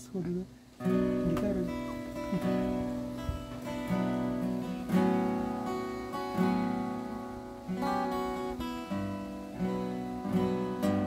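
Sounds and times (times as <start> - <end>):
acoustic guitar chords ringing: 0.0 - 11.0.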